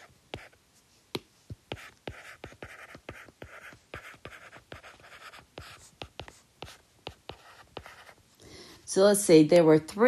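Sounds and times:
stylus scratching on tablet: 0:00.0 - 0:00.6, 0:01.6 - 0:08.2.

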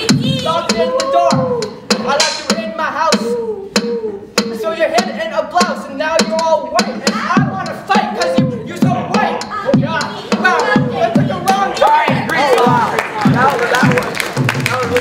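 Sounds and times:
beatboxing vocal drum clicks: 0:00.0 - 0:13.5.

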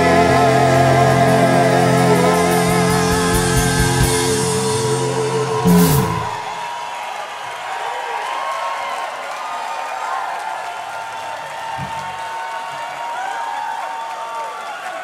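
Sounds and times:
band final chord: 0:00.0 - 0:06.6
audience applauding and cheering: 0:00.0 - 0:15.0
whoops: 0:03.0 - 0:15.0.

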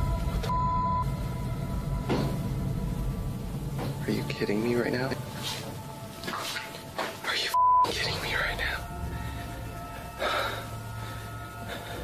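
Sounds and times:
censor bleep: 0:00.5 - 0:01.1, 0:07.6 - 0:07.9.

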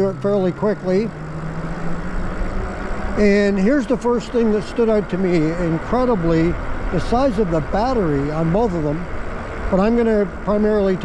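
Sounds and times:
road rumble: 0:00.0 - 0:11.0
steady low hum: 0:00.0 - 0:11.0.

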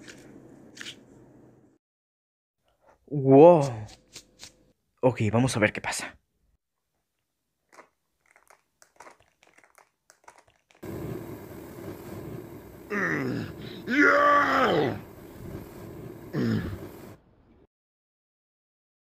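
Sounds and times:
steady hiss: 0:10.8 - 0:17.2.

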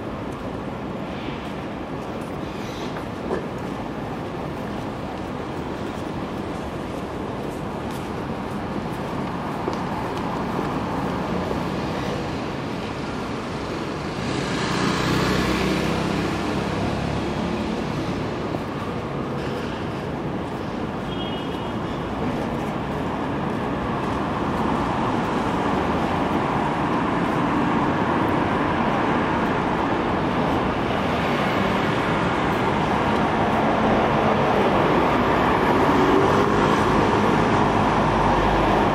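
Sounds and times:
cars passing on street: 0:00.0 - 0:38.9.

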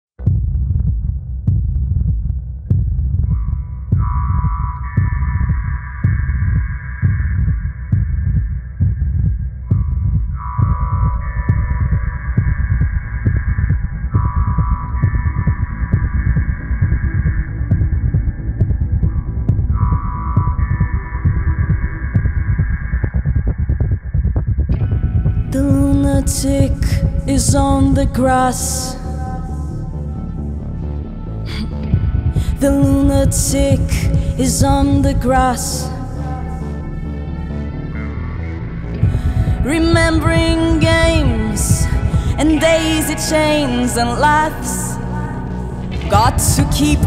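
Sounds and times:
synthesizer low throb: 0:00.2 - 0:47.0
sustained synthesizer chords: 0:24.7 - 0:47.0.

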